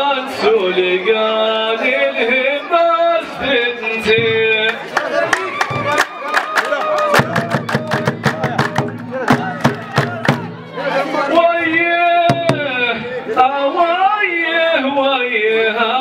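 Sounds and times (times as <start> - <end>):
men clapping hands rhythmically: 4.6 - 10.5
man chanting: 10.8 - 16.0.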